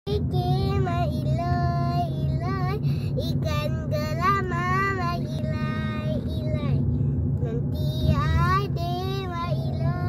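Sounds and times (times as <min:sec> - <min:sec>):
car cabin rumble: 0:00.1 - 0:10.0
girl singing: 0:07.4 - 0:10.0.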